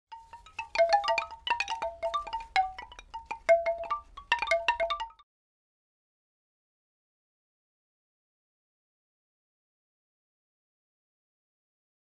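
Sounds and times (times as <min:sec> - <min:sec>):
chime jingle: 0:00.1 - 0:05.2.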